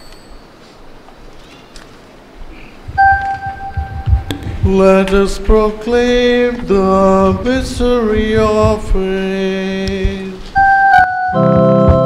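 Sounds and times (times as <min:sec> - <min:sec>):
low thuds: 0:02.8 - 0:10.7, 0:11.4 - 0:12.0
steady organ note: 0:10.6 - 0:12.0.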